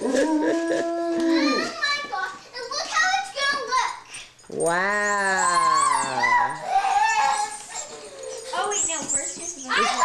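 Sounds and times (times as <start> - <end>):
dog long low howl: 0.0 - 1.5.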